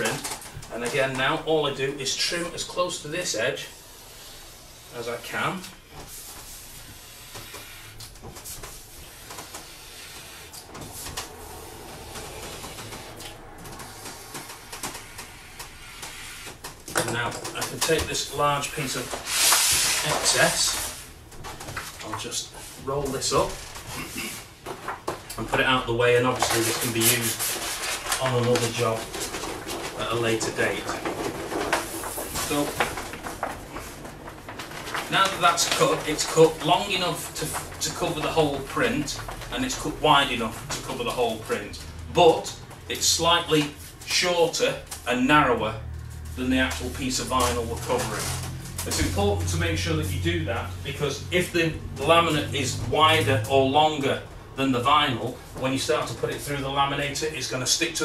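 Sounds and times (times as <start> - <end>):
plastic film rustling: 0.0 - 45.1, 45.9 - 50.2
blade scraping plastic film: 6.1 - 22.1, 26.2 - 42.5, 46.1 - 49.5.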